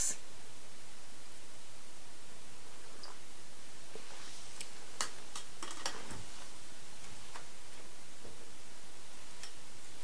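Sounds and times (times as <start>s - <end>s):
steady room hiss: 0.0s - 10.0s.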